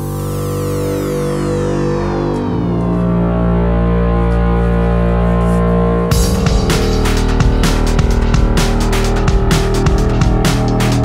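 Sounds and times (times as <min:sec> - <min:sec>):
bass notes: 0:00.0 - 0:11.0
falling synth sweep: 0:00.0 - 0:11.0
synthesizer tones: 0:00.0 - 0:11.0.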